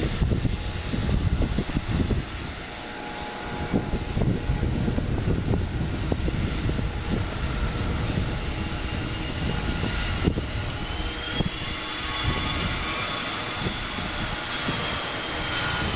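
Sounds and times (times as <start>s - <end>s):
jet engines at taxi power: 0.0s - 15.9s.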